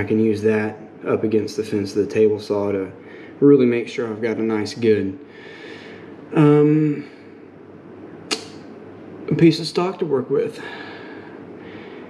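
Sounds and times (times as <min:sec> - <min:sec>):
low background hiss: 0:00.0 - 0:12.0
sharp click: 0:08.3 - 0:08.7.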